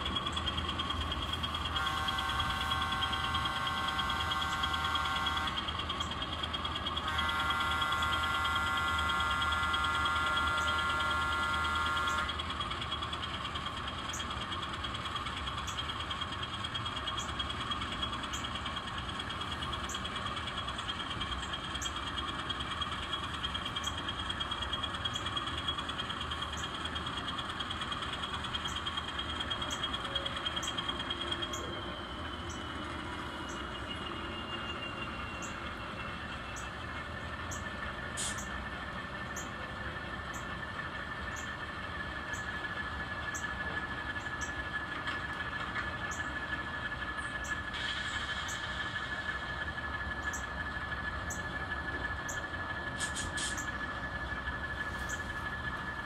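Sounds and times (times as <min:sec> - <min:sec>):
model locomotive motor whine: 0:00.0 - 0:56.0.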